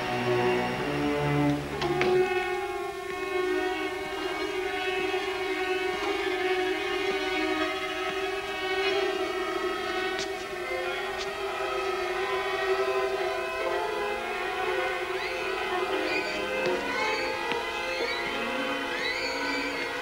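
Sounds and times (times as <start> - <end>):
bowed strings holding a chord: 0.0 - 20.0.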